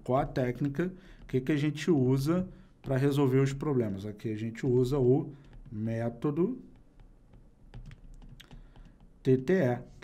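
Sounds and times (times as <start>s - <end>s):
stylus tapping on tablet: 0.2s - 3.8s, 4.6s - 9.5s.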